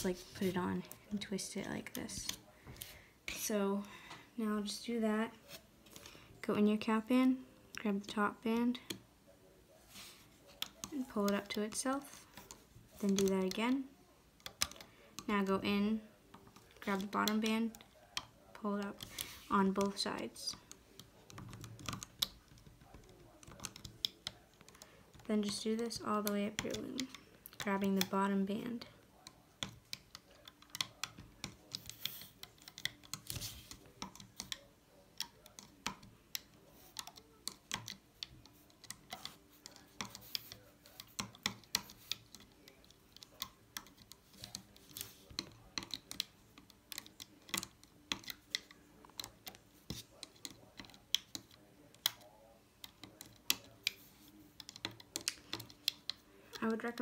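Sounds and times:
rubber bands clicking on plastic pegs: 10.6 - 57.0.

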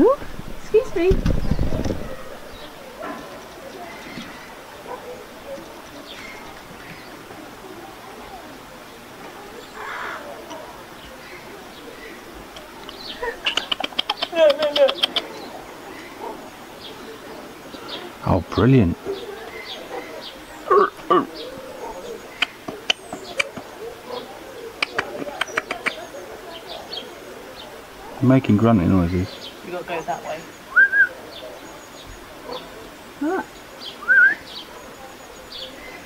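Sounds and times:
faint bird calls: 1.3 - 18.3, 19.0 - 28.2
rising whistled call: 30.7 - 31.2, 33.8 - 34.6.

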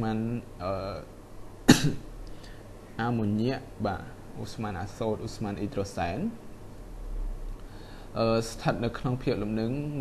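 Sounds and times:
man speaking: 0.0 - 1.1, 3.0 - 6.4, 8.2 - 10.0
man coughing: 1.7 - 2.1.

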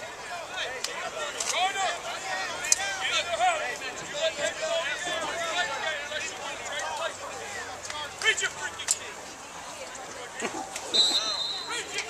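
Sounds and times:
people talking and calling out: 0.0 - 12.0.

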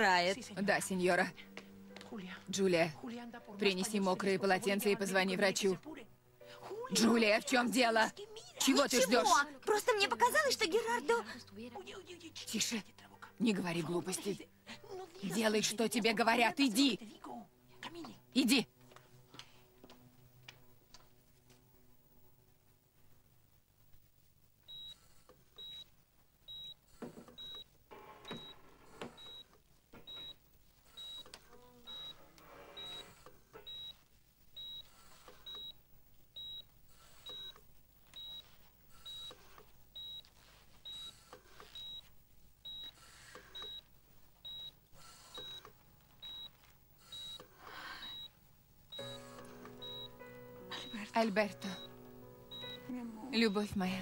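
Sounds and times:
quiet background music: 0.0 - 54.0
patient monitor beeping: 24.6 - 54.0.

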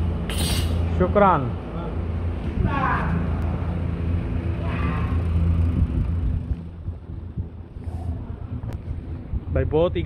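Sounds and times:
engine idling hum: 0.0 - 10.0.

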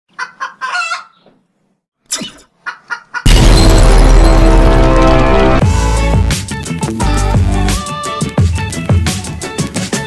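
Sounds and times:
hen clucking calls: 0.1 - 1.4, 2.2 - 3.2
loud music: 3.3 - 8.1.

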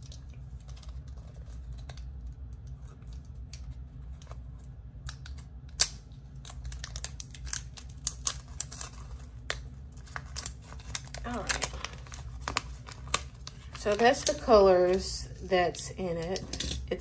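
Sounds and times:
plastic crinkling and tearing: 0.0 - 17.0
steady low hum: 0.0 - 17.0.

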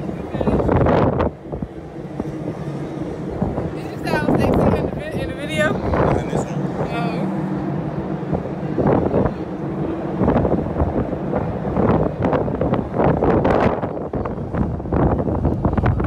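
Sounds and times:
steady low hum: 0.0 - 16.0
wind gusting across microphone: 0.0 - 16.0.

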